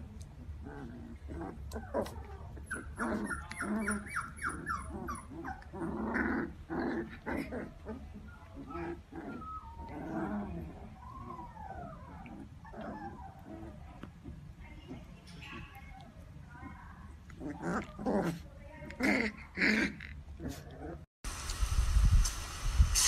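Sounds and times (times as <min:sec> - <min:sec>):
puppies whining: 0:00.0 - 0:18.3
puppies growling: 0:00.0 - 0:21.1
puppies yipping: 0:01.7 - 0:05.8, 0:07.4 - 0:10.2, 0:10.8 - 0:14.0.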